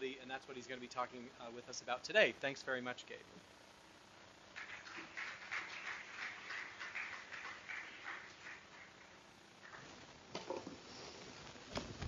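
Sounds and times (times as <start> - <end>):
audience clapping: 4.5 - 9.9.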